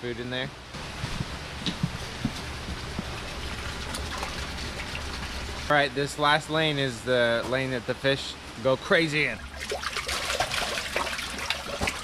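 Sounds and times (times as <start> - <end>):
fish splashing in water: 3.0 - 5.7, 9.5 - 12.0.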